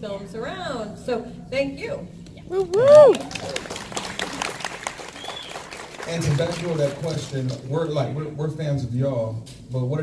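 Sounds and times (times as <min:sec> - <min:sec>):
crowd cheering: 0:02.5 - 0:07.1
audience clapping: 0:02.5 - 0:07.7.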